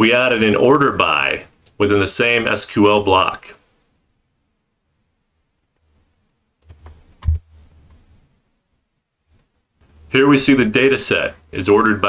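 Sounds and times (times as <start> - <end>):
keyboard and mouse clicks: 6.6 - 8.0.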